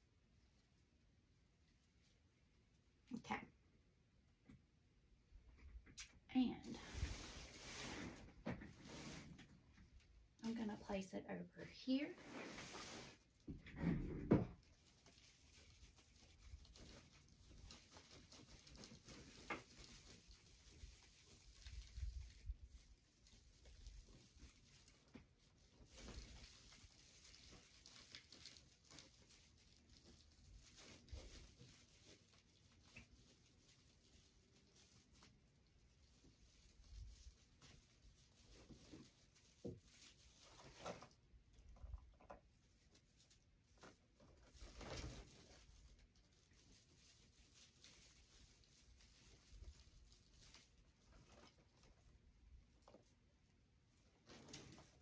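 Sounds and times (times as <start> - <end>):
ribbon rustling and crinkling: 14.4 - 55.0.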